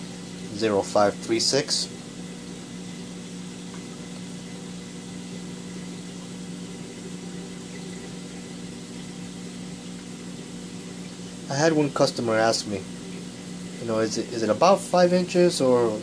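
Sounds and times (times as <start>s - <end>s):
aquarium pumps humming: 0.0s - 16.0s
circulating water hiss: 0.0s - 16.0s.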